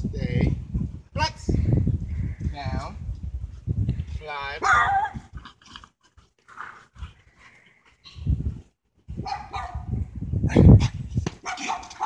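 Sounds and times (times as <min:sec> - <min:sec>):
dog barking: 0:04.6 - 0:05.2, 0:09.2 - 0:09.9, 0:11.4 - 0:12.0.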